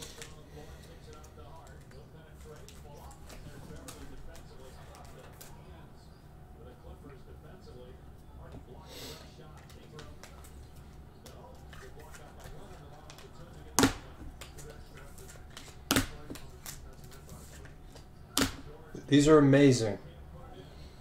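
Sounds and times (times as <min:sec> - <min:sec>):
cards rustling: 0:00.0 - 0:05.7, 0:09.5 - 0:18.6.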